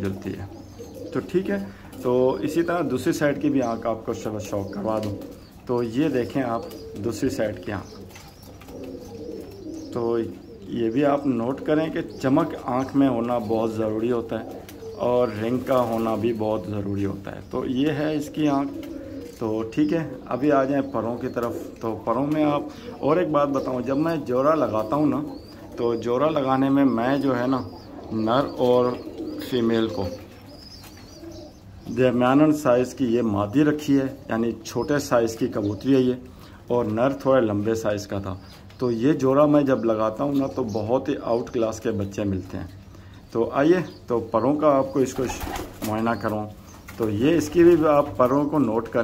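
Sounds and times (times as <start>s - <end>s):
pigeons cooing softly: 0.0s - 49.0s.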